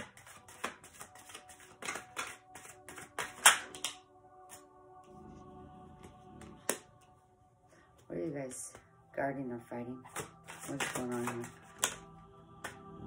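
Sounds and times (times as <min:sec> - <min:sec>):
cards being shuffled: 0:00.0 - 0:04.6, 0:10.1 - 0:12.8
quiet background music: 0:00.0 - 0:13.0
card snapped on table: 0:01.8 - 0:04.0.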